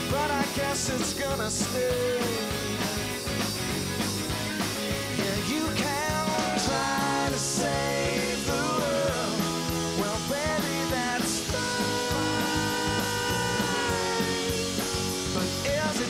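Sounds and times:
person singing: 0:00.0 - 0:03.0, 0:05.2 - 0:16.0
rock band playing: 0:00.0 - 0:16.0.

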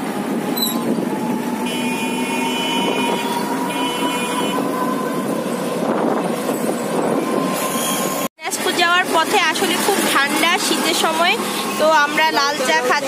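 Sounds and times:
road noise: 0:00.0 - 0:13.0
horn blasts: 0:00.6 - 0:05.5
auto-rickshaw motor running: 0:08.4 - 0:13.0.

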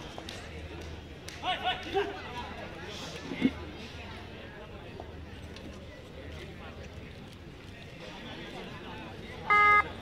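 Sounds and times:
crowd chatter: 0:00.0 - 0:10.0
loud buzzer tone: 0:09.5 - 0:10.0.

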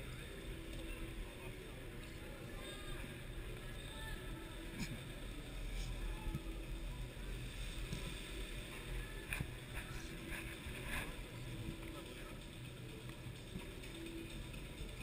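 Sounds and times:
faint hum: 0:00.0 - 0:15.0.

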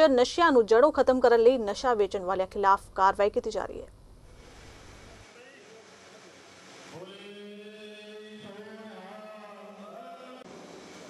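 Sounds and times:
man chanting: 0:07.0 - 0:10.4.

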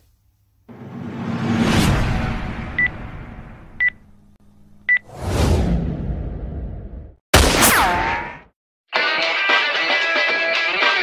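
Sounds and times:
whooshing rush of noise: 0:00.7 - 0:03.8.

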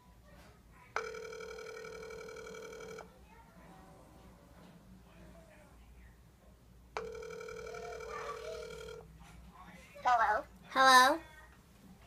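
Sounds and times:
phone ringback tone: 0:01.0 - 0:03.1, 0:07.0 - 0:09.1.

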